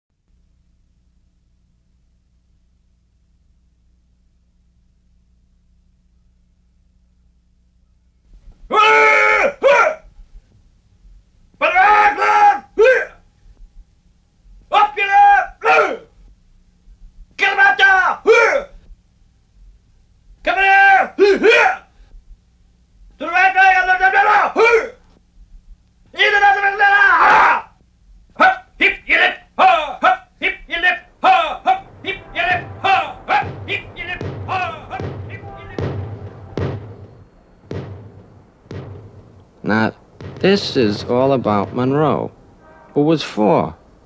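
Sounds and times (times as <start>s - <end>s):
dog barking: 21.3s - 21.9s, 28.4s - 28.8s.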